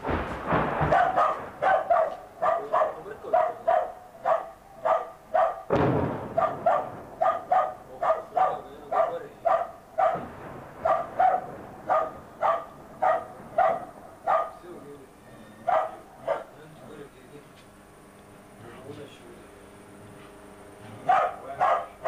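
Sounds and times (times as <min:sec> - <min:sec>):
dog barking: 0:00.8 - 0:05.7, 0:06.3 - 0:14.7, 0:15.6 - 0:16.6, 0:21.0 - 0:22.0.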